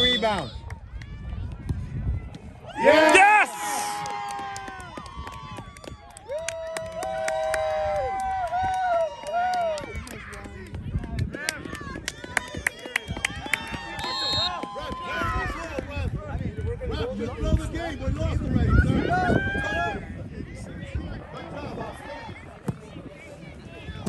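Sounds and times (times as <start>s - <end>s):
crowd cheering with wordless shouts: 2.6s - 10.3s, 11.8s - 16.0s.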